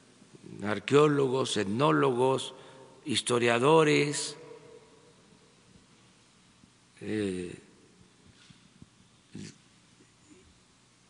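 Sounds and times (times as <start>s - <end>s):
man breathing: 2.6s - 3.0s.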